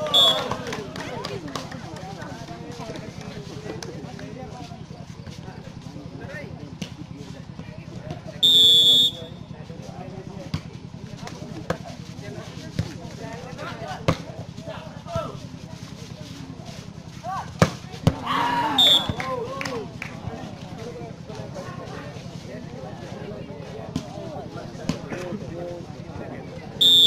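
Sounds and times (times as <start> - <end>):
referee's whistle: 0.0 - 0.6, 8.4 - 9.4, 18.7 - 19.3, 26.8 - 27.0
spectators shouting: 0.0 - 1.0, 18.1 - 19.8
volleyball struck with smacks: 17.6 - 18.2.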